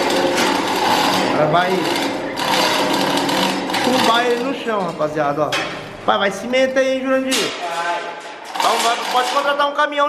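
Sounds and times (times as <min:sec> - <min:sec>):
chain hoist whirring and rattling: 0:00.0 - 0:05.0, 0:08.4 - 0:09.6.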